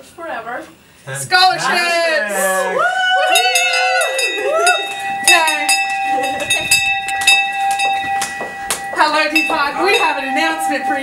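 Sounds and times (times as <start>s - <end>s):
hand bell ringing: 3.3s - 11.0s.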